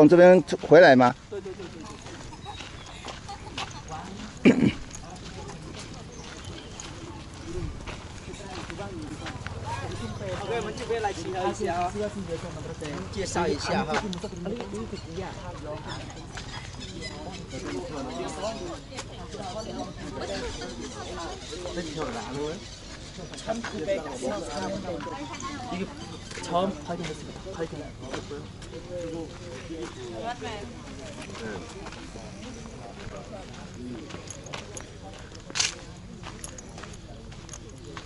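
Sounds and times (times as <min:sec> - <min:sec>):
distant people talking: 0:00.0 - 0:38.0
footsteps on gravel: 0:00.4 - 0:16.8, 0:25.9 - 0:38.0.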